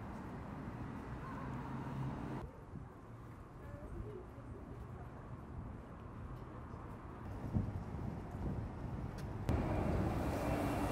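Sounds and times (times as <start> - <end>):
distant traffic rumble: 5.7 - 10.9.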